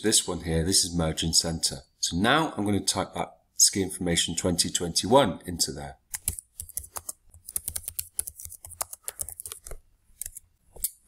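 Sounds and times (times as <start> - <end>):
typing on computer keyboard: 6.1 - 10.9.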